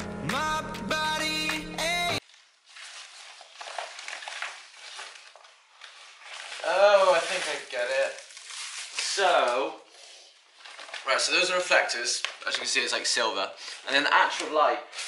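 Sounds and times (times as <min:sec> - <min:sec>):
fabric rustling and crinkling: 0:02.2 - 0:15.0.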